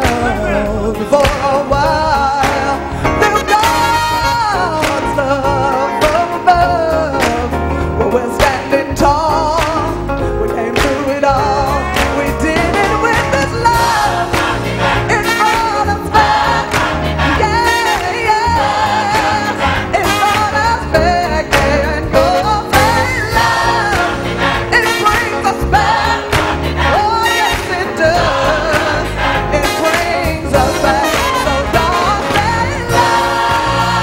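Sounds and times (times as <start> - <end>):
gospel band with steady beat: 0.0 - 34.0
woman singing lead: 0.0 - 34.0
choir singing: 11.2 - 34.0.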